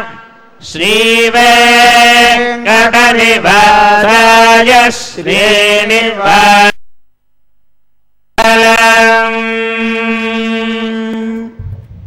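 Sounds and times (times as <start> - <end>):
faint low rumble: 11.6 - 12.0.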